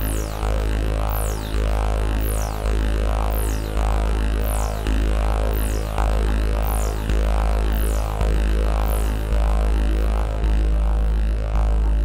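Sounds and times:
deep droning synth bass: 0:00.0 - 0:12.0.

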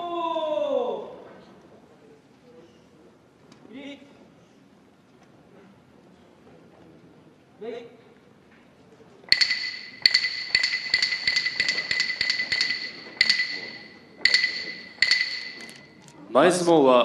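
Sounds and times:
wooden clappers striking: 0:09.3 - 0:16.1.

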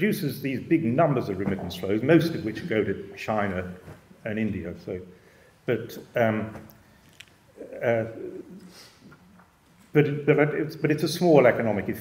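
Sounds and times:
man speaking: 0:00.0 - 0:06.7, 0:07.6 - 0:08.7, 0:09.9 - 0:12.0
soft breath: 0:05.1 - 0:05.7, 0:06.8 - 0:09.2.

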